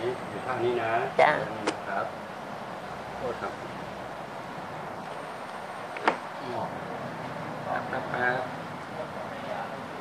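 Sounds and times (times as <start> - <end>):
steady background noise: 0.0 - 10.0
faint low voices: 6.3 - 10.0.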